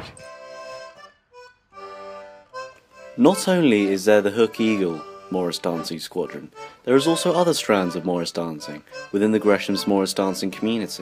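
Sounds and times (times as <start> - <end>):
free-reed instrument folk tune: 0.0 - 11.0.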